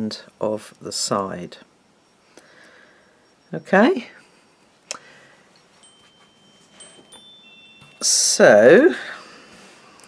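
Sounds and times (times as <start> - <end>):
faint high ringing tones: 0.0 - 10.0.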